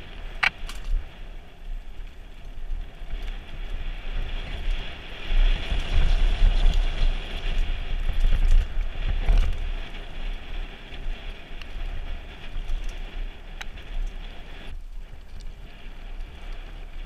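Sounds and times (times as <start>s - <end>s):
bike rattling: 0.0s - 17.0s
bike tyres on dirt: 0.0s - 17.0s
wind rumble on microphone: 0.0s - 17.0s.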